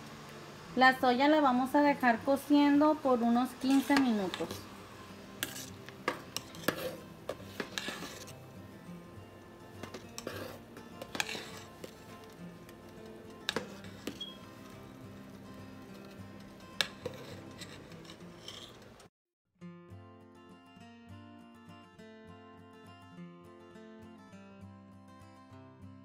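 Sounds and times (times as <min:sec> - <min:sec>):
soft background music: 0:00.0 - 0:19.1
metal spoon scraping pot: 0:03.6 - 0:04.6, 0:05.3 - 0:08.5, 0:09.8 - 0:12.4, 0:13.3 - 0:15.0, 0:15.8 - 0:19.1.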